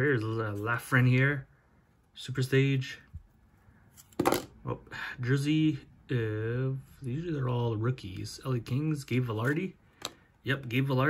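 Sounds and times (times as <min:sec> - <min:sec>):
cards rustling: 0:07.7 - 0:11.0
card tapping: 0:09.3 - 0:10.8.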